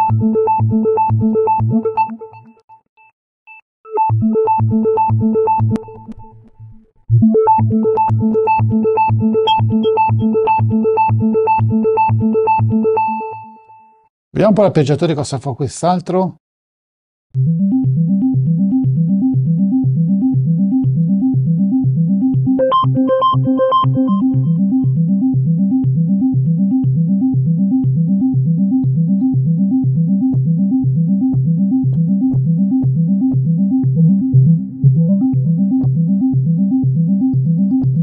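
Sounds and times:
synthesizer arpeggio: 7.1 - 13.6, 17.4 - 37.8.

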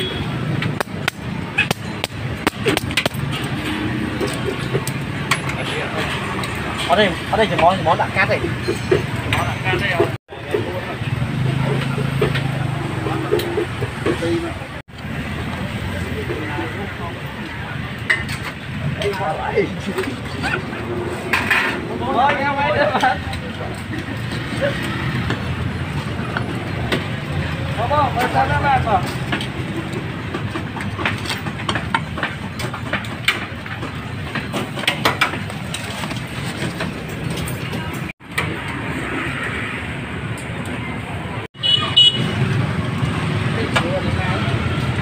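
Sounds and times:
voices talking: 0.0 - 38.1, 40.4 - 45.0
street traffic: 0.0 - 45.0.

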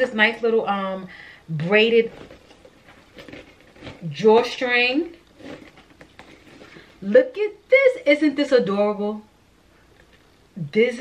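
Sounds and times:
handbag rustling: 1.8 - 7.0.

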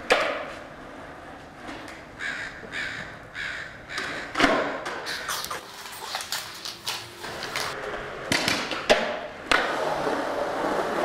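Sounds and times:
skateboard striking concrete: 6.3 - 10.0.

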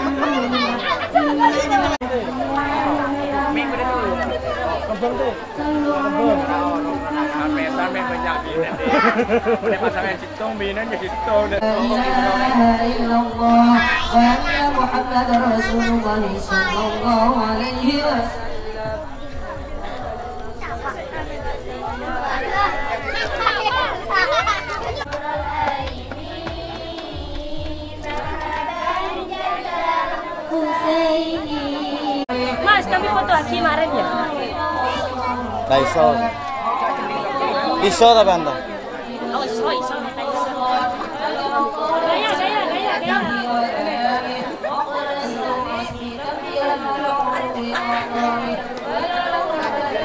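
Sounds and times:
overlapping chatter of voices: 0.0 - 50.0.

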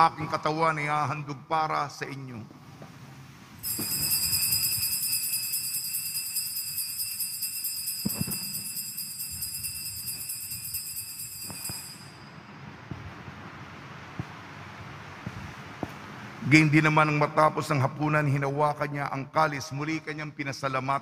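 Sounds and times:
altar bells jingling: 3.6 - 12.5.

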